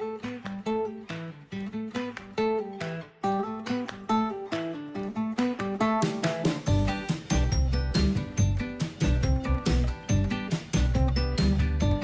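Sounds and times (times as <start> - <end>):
guitar strumming chords: 0.0 - 12.0.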